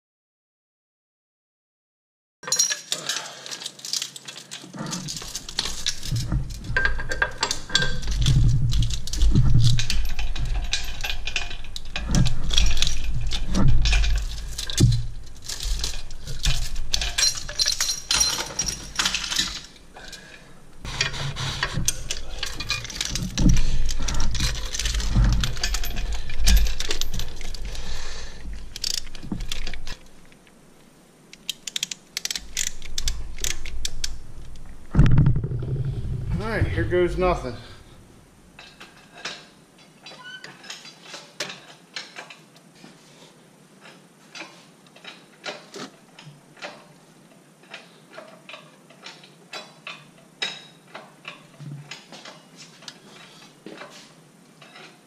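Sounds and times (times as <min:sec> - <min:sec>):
steel chains rattling and clinking: 0:02.4 - 0:30.3, 0:31.4 - 0:35.8
low handling bumps: 0:05.1 - 0:20.0, 0:32.4 - 0:38.4.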